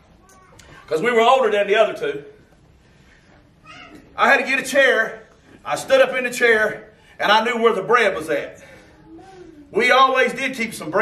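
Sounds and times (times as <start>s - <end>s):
man speaking: 0.9s - 2.4s, 4.2s - 8.7s, 9.7s - 11.0s
faint voice: 8.7s - 9.8s.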